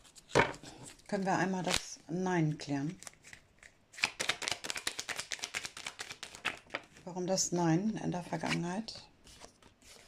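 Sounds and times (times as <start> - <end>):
cards being shuffled: 2.8 - 7.0.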